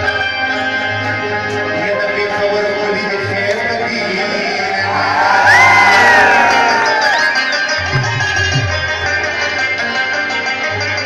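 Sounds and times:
live folk music with rabab and tabla: 0.0 - 11.0.

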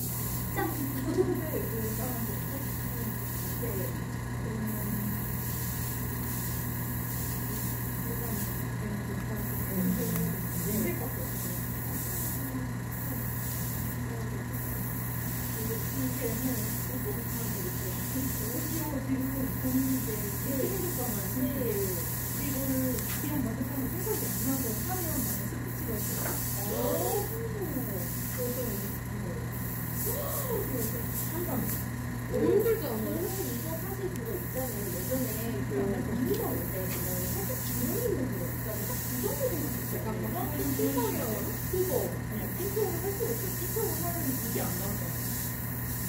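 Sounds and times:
steady low hum: 0.0 - 46.0
voices talking: 0.4 - 46.0.

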